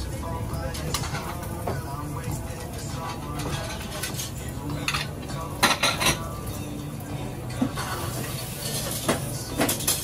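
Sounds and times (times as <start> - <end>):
low kitchen hum: 0.0 - 10.0
dishes and utensils clinking: 0.6 - 10.0.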